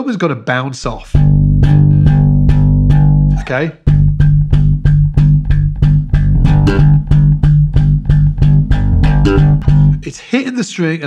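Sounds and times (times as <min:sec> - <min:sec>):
slapped electric bass: 0:00.8 - 0:10.1.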